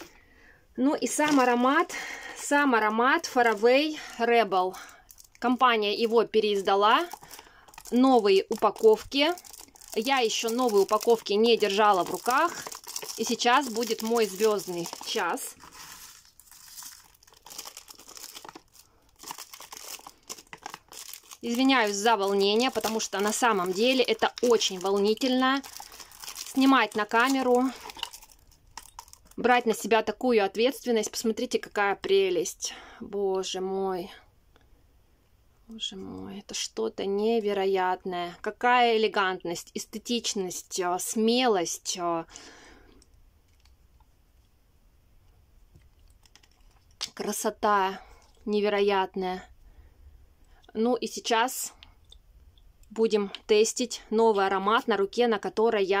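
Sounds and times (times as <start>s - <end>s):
cellophane wrap crinkling and tearing: 4.9s - 5.5s, 6.6s - 29.8s, 46.0s - 47.0s.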